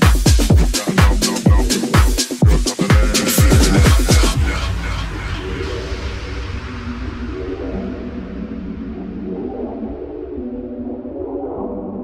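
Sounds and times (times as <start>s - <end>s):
deep bass: 0.0s - 12.0s
held synth chords: 2.4s - 10.8s.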